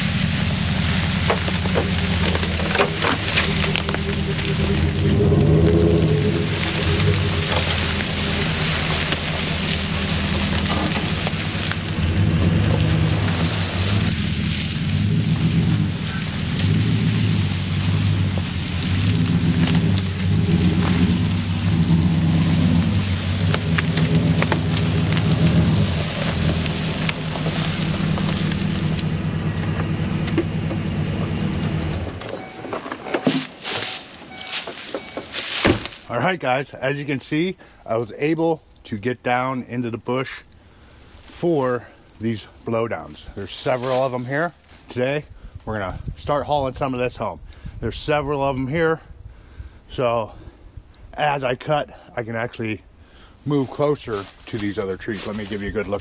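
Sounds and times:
pickup truck engine running: 0:00.0 - 0:36.3, 0:53.1 - 0:56.0
tyres crackling over dry leaves: 0:00.0 - 0:56.0.

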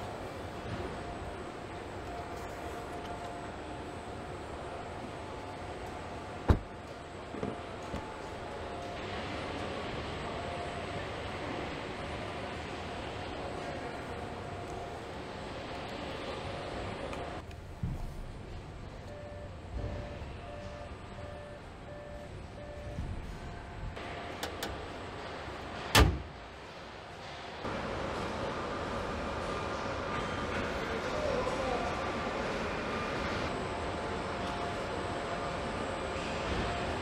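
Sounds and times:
machinery hum: 0:00.0 - 0:37.0
loud thump: 0:06.5 - 0:06.7
machine beeper: 0:19.1 - 0:23.0.

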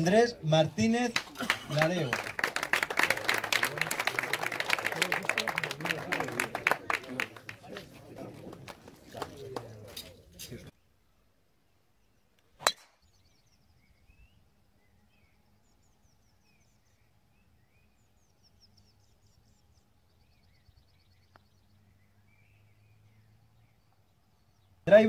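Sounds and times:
faint birdsong: 0:00.0 - 0:25.0
golf club striking ball: 0:12.6 - 0:12.9.

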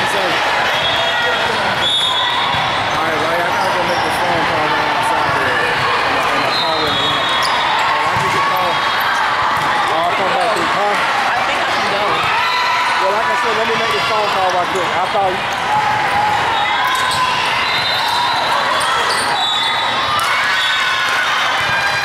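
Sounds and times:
many voices talking and calling: 0:00.0 - 0:22.0
sneakers squeaking on court: 0:06.4 - 0:10.8.

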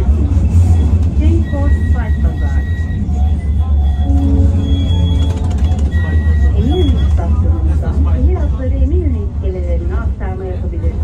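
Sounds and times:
tram rumbling: 0:00.0 - 0:11.0
high tram whines: 0:01.6 - 0:07.5.

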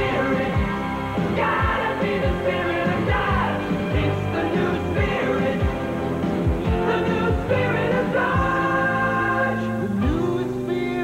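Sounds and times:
backing music: 0:00.0 - 0:11.0
voices singing held chord: 0:00.0 - 0:11.0.

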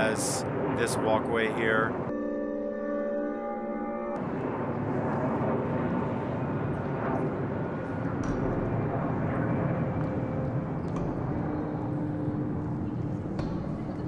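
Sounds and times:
steady low rumble: 0:00.0 - 0:02.2, 0:04.1 - 0:14.0.

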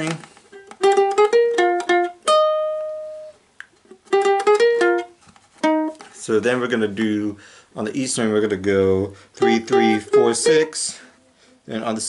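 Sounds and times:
ukulele picked notes: 0:00.0 - 0:06.2, 0:09.4 - 0:10.9.

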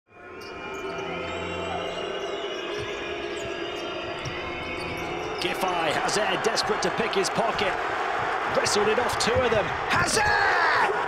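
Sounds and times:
arena crowd noise: 0:00.1 - 0:11.0.

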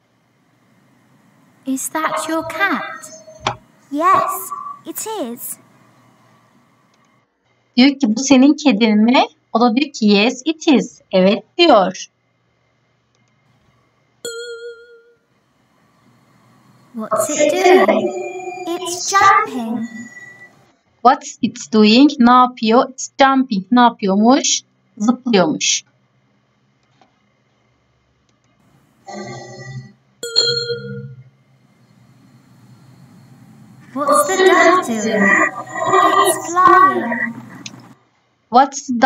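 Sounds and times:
faint low hum: 0:00.0 - 0:07.2, 0:15.6 - 0:20.7, 0:28.7 - 0:38.0
bell-like chime: 0:30.2 - 0:31.2.

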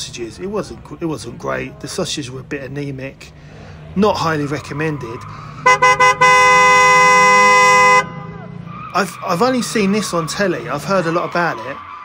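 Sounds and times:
vehicle horn blast: 0:05.6 - 0:08.3.

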